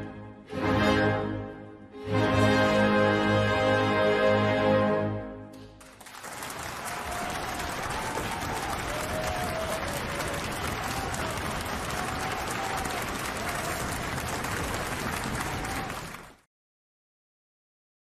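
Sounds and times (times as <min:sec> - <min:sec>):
steady applause: 0:05.6 - 0:16.5.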